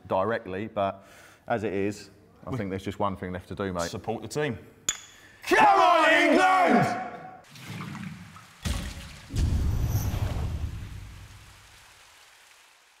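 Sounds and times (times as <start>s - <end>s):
splash into water: 7.5s - 13.0s.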